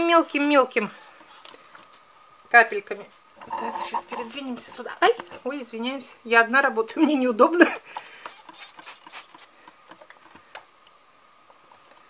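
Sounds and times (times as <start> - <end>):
faint clicks and taps: 8.0 - 12.0
mist sprayer hiss: 8.1 - 10.4.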